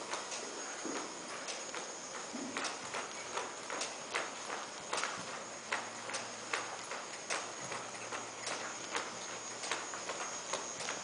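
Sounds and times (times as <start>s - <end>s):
horse hoofbeats on dirt: 0.0s - 11.0s.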